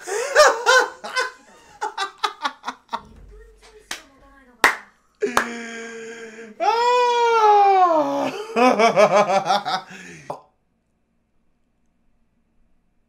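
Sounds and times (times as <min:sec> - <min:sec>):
man laughing hard: 0:00.0 - 0:03.0, 0:05.2 - 0:10.4
sharp clap: 0:03.0 - 0:05.6.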